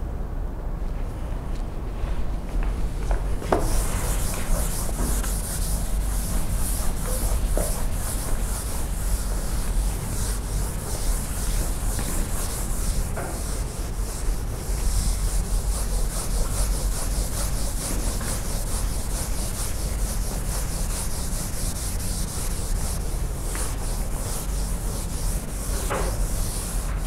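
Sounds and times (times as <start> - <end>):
low room rumble: 0.0 - 27.0
eraser scrubbing a blackboard: 3.4 - 27.0.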